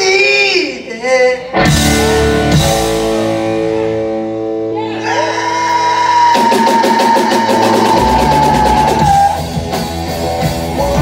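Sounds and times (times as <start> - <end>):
rock band playing: 1.4 - 11.0
drums steady beat: 1.6 - 3.5, 6.2 - 11.0.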